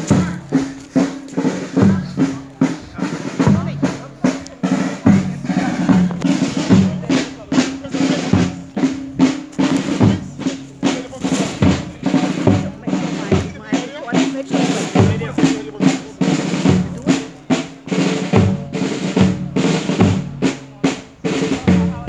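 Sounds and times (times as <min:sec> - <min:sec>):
snare and bass drums marching: 0:00.0 - 0:22.0.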